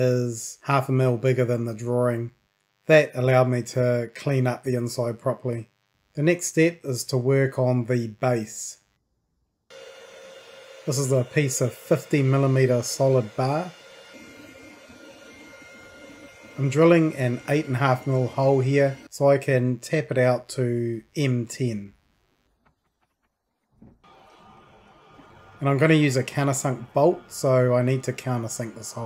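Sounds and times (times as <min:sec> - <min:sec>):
metal lathe humming: 0:09.7 - 0:19.1, 0:24.1 - 0:29.0
man's voice: 0:10.9 - 0:13.7, 0:16.6 - 0:21.9, 0:25.6 - 0:29.0.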